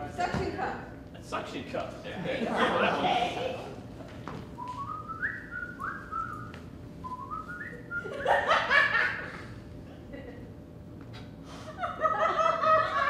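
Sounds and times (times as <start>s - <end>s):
audience laughter: 2.2s - 3.8s, 8.0s - 10.5s, 11.7s - 13.0s
whistled notes stepping upward: 4.6s - 8.1s.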